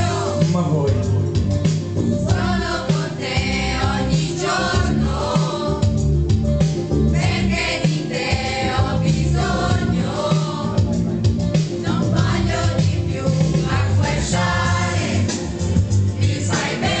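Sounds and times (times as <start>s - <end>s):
women singing karaoke: 0.0s - 0.4s, 2.1s - 6.2s, 7.1s - 17.0s
loud backing track: 0.0s - 17.0s.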